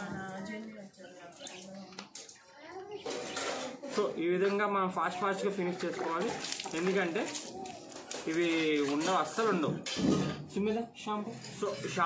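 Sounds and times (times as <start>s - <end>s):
wet splashing and rubbing of fur: 5.9s - 9.2s.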